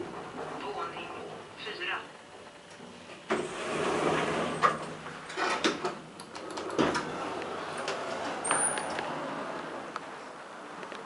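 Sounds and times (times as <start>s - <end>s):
elevator doors sliding open: 0.0s - 1.5s, 2.8s - 10.7s.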